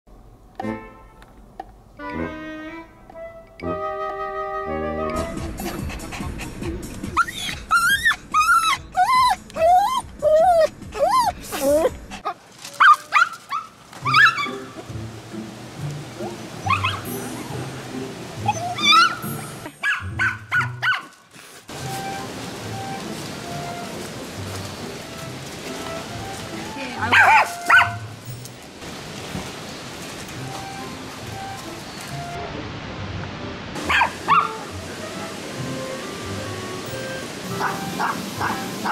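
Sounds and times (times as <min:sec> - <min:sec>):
background music: 0:00.6 - 0:01.4, 0:02.0 - 0:12.2, 0:14.0 - 0:21.0, 0:21.7 - 0:28.5, 0:30.3 - 0:38.9
dog whining: 0:07.1 - 0:14.6, 0:16.6 - 0:17.1, 0:18.4 - 0:19.6.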